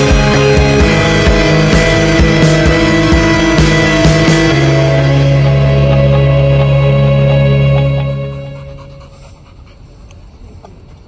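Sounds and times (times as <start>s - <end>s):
dog panting: 5.4s - 11.0s.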